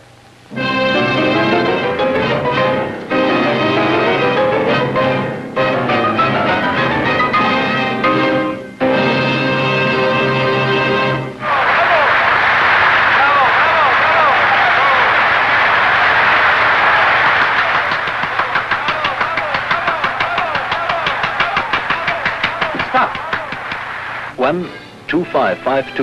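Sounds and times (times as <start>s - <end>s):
shouts from audience: 11.4s - 23.6s
audience applauding and cheering: 11.4s - 24.3s
rhythmic clapping: 11.4s - 24.3s.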